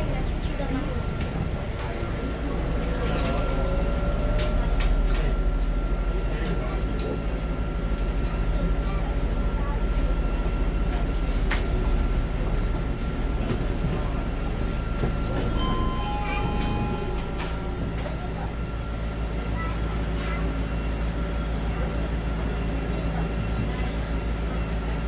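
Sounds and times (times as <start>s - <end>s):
bus cabin low rumble: 0.0s - 25.0s.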